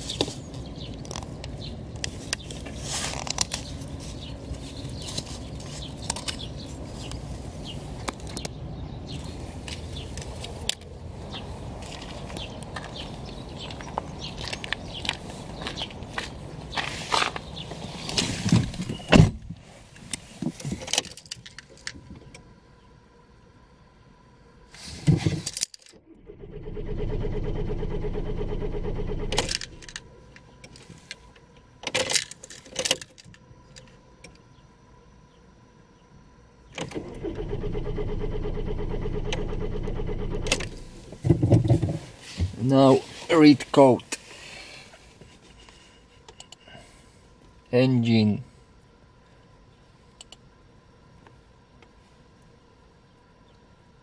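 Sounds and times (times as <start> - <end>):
diesel engine cranking on starter: 25.9 - 30.0, 36.7 - 41.1.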